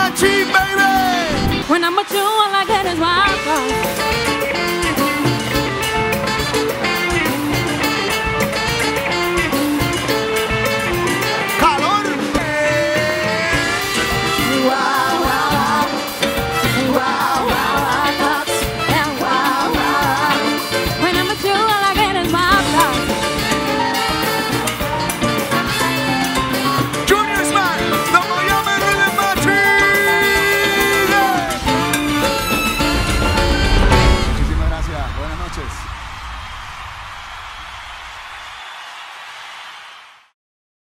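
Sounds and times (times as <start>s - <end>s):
man singing lead: 0.0s - 1.6s, 11.6s - 16.0s, 27.1s - 31.9s
live band latin dance music: 0.0s - 36.0s.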